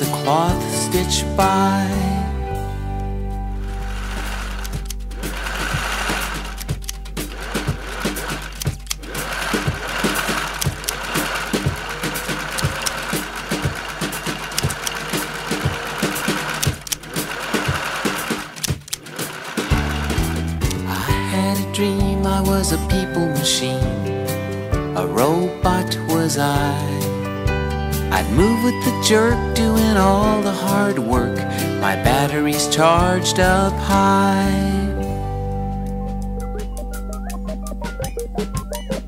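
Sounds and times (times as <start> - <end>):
backing music: 0.0 - 39.0
sewing machine needle ticking: 4.3 - 20.9.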